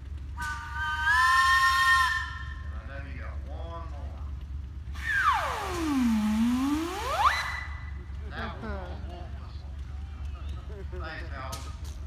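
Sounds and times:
steam whistle blowing: 0.4s - 2.8s, 5.0s - 8.0s
steam hissing: 5.0s - 7.7s.

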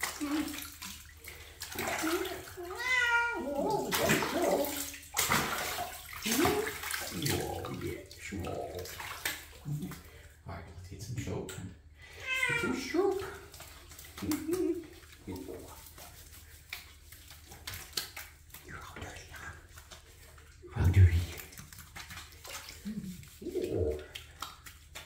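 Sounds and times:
water splashing in a bathtub: 0.0s - 25.0s
cat meowing: 2.6s - 3.9s, 12.2s - 12.8s.

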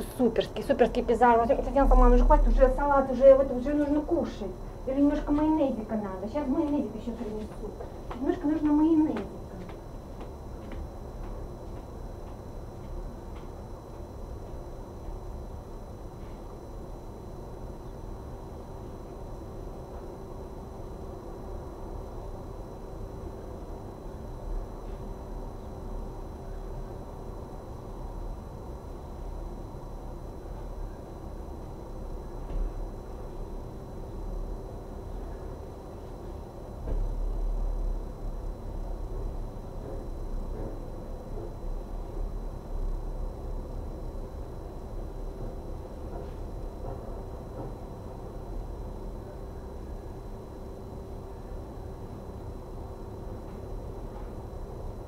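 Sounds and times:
faint hum: 0.0s - 55.0s.

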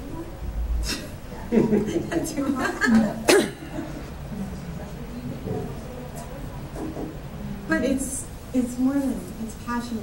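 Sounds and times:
faint low murmuring: 0.0s - 10.0s
person coughing: 3.2s - 3.7s.

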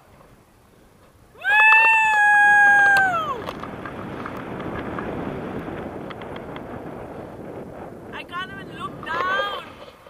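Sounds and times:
woman crying woo: 1.4s - 3.4s.

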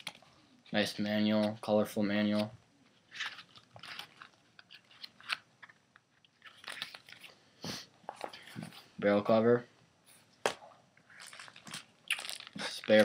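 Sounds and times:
paper pages rustling: 2.2s - 5.8s, 6.4s - 7.4s, 11.1s - 13.0s.

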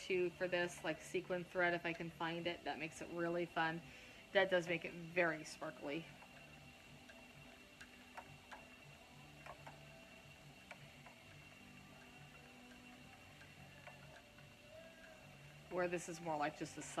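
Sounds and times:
spinning wheel ticking: 0.0s - 17.0s.

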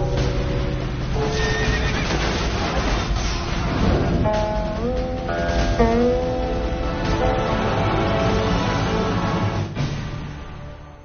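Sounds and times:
loud dramatic music: 0.0s - 11.0s
horse whinnying: 1.2s - 2.2s.

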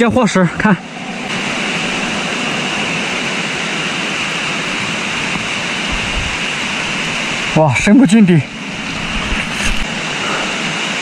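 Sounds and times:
water rushing: 0.0s - 11.0s.

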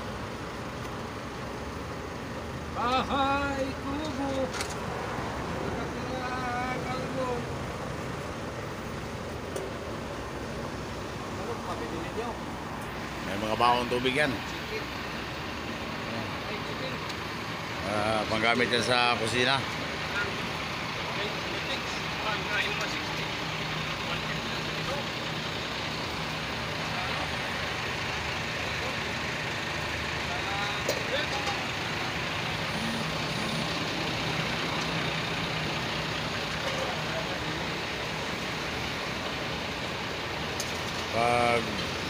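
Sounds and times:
bus engine idling: 0.0s - 42.0s.

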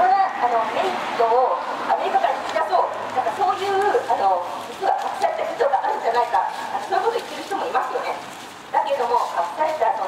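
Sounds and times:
woman speaking into a microphone: 0.0s - 10.0s.

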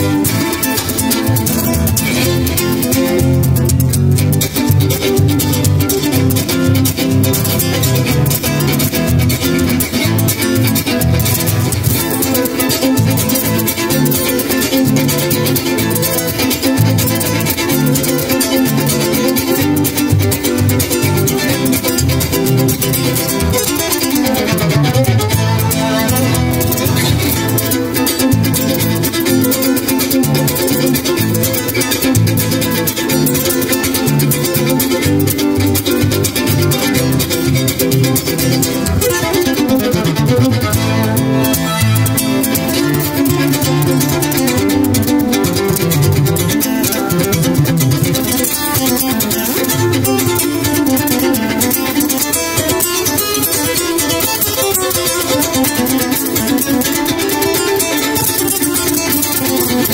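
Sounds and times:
nylon-string guitar strumming: 0.0s - 59.9s
violin playing: 10.3s - 45.3s.

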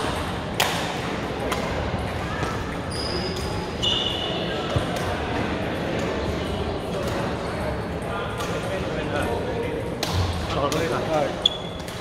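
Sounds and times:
indistinct voices chattering: 0.0s - 12.0s
high squeak: 2.9s - 4.4s, 11.4s - 11.8s
rackets striking shuttlecocks: 9.9s - 12.0s.

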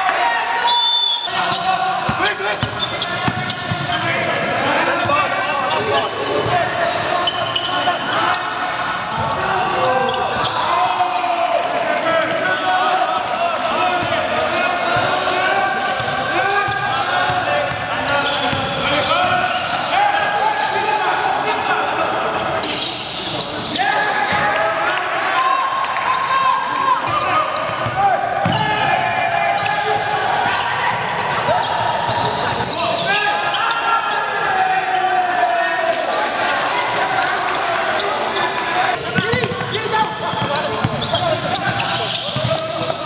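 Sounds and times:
players calling out: 0.0s - 43.0s
basketball bouncing on court: 1.6s - 5.2s, 27.1s - 28.8s, 39.1s - 43.0s.

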